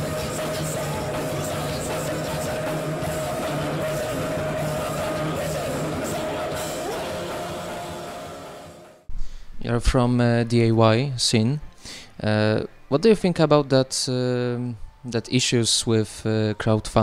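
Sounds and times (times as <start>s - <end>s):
punk rock band playing: 0.0s - 8.9s.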